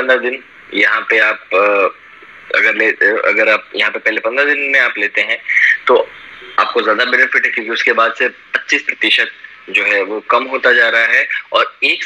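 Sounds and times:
man talking over video call: 0.0s - 12.0s.

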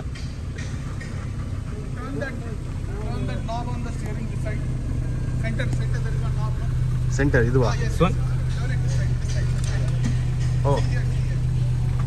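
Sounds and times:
car engine running: 0.0s - 12.0s
faint voices: 0.8s - 12.0s.

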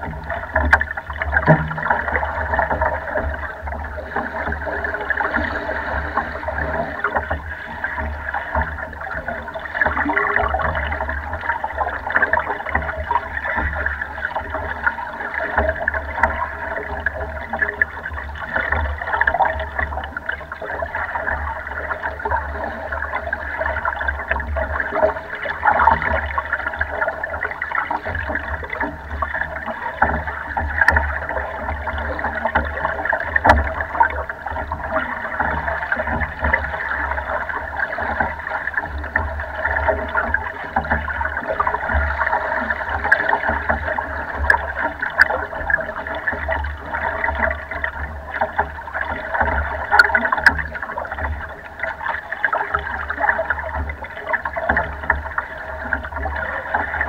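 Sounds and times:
constant low rumble: 0.0s - 57.0s
water sloshing against boat hull: 0.0s - 57.0s.

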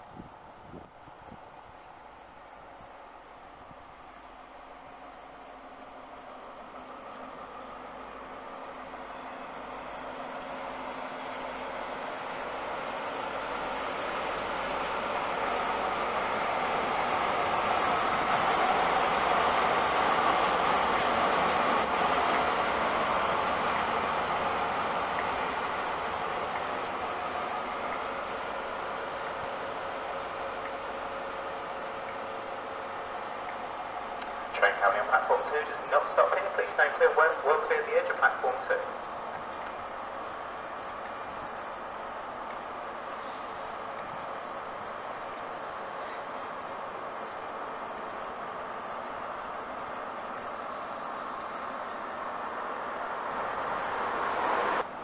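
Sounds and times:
diesel train passing: 0.0s - 55.0s.

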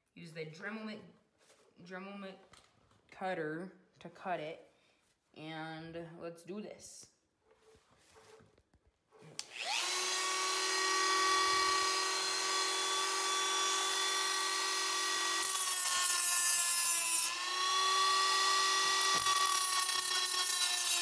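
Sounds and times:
rotary tool high whine: 9.4s - 21.0s.

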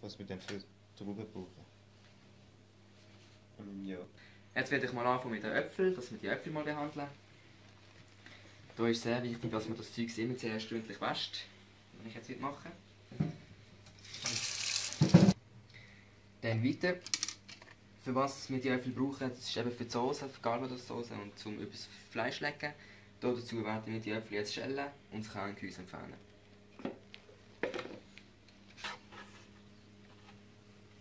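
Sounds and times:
faint steady hum: 0.0s - 31.0s
tap water running into a sink: 14.1s - 15.3s.

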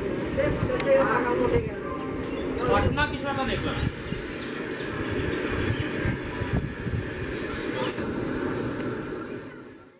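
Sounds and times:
train passing at high speed: 0.0s - 9.9s.

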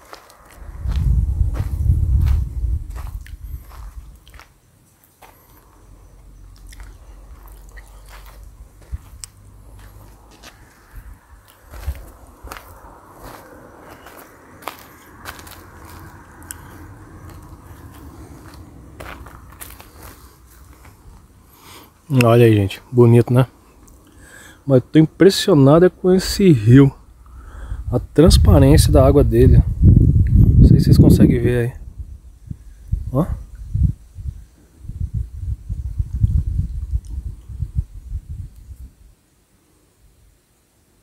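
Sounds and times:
faint low rumble: 0.0s - 24.9s, 25.9s - 39.2s.

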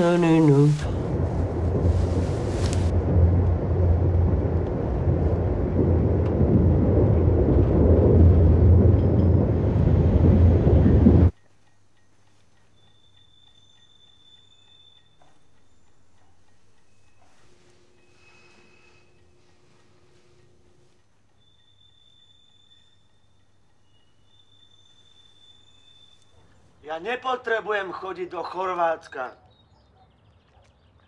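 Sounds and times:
loud dense low rumble: 0.0s - 11.3s.

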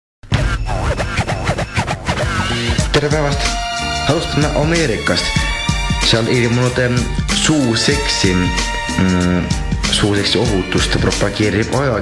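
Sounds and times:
turntable scratching: 0.3s - 3.1s.

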